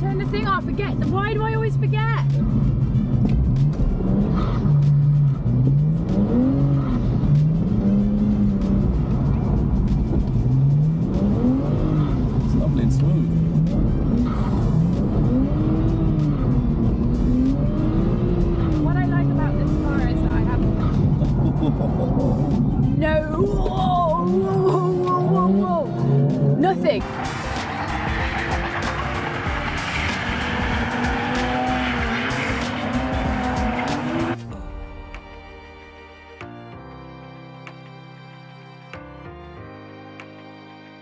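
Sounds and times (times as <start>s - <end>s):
car engine revving: 0.0s - 34.5s
road and tyre rumble: 0.0s - 34.8s.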